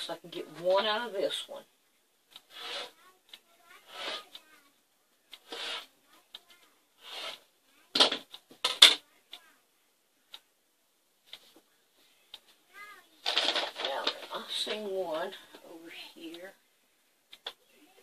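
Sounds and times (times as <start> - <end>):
rotary cutter swishing through batting: 2.5 - 3.0, 3.8 - 4.3.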